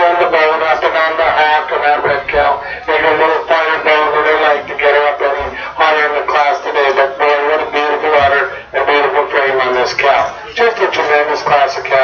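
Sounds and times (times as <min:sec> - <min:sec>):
man talking over public address: 0:00.0 - 0:12.0.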